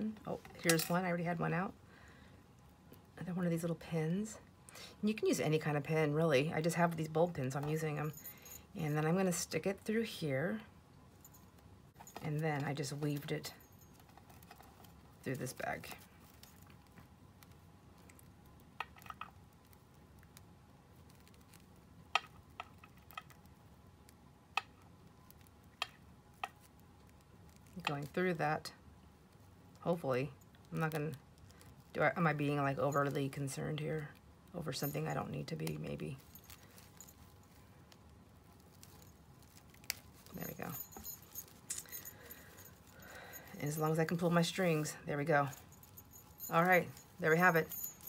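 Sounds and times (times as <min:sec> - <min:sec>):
small jingle bell jingling: 0:07.7 - 0:09.2, 0:34.7 - 0:37.7, 0:38.8 - 0:48.0
light rustling of fabric bag: 0:35.7 - 0:48.0.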